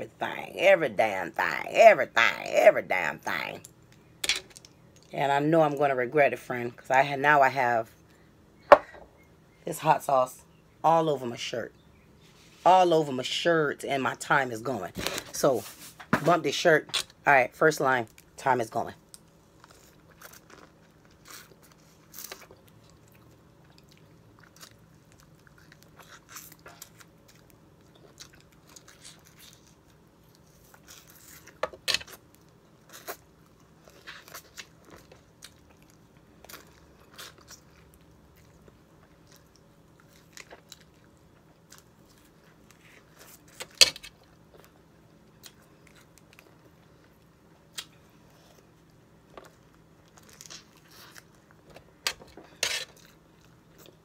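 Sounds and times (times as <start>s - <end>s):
biting and chewing citrus: 19.2s - 54.0s.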